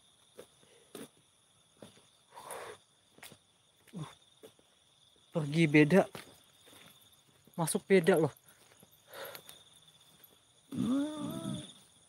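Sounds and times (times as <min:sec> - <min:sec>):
crickets chirring: 0:00.0 - 0:12.0
footsteps on grass: 0:05.4 - 0:10.4.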